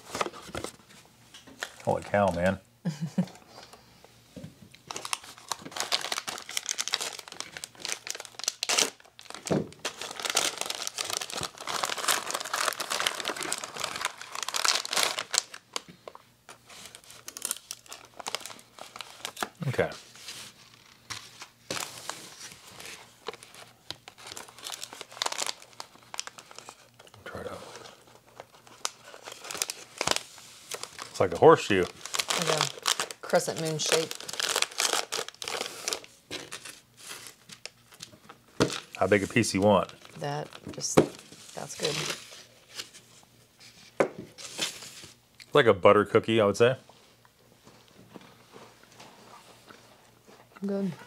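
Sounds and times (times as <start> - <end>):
wrapping paper crinkling and tearing: 4.8 - 43.8, 44.4 - 45.2.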